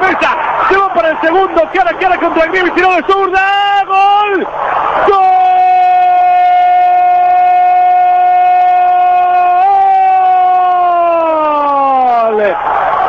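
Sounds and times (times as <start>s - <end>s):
male commentator shouting: 0.0s - 12.6s.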